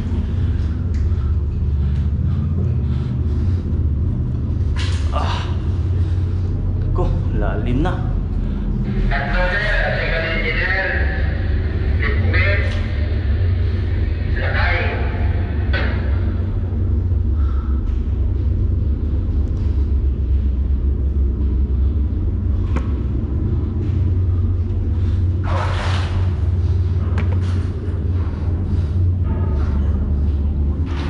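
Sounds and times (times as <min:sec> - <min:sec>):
low machinery rumble: 0:00.0 - 0:31.0.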